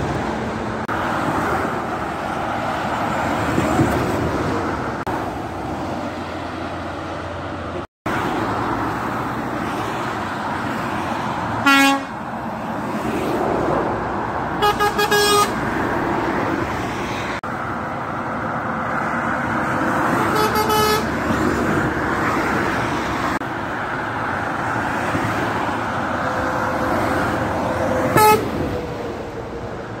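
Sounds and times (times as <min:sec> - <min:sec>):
motorway traffic noise: 0:00.0 - 0:30.0
lorry air horns: 0:11.6 - 0:12.2, 0:14.6 - 0:15.6, 0:20.2 - 0:21.1, 0:28.1 - 0:28.6.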